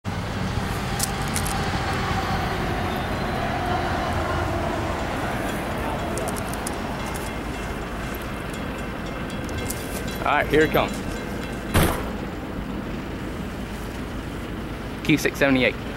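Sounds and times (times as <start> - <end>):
road traffic noise: 0.0 - 15.9
distant diesel train rumble: 0.1 - 15.9.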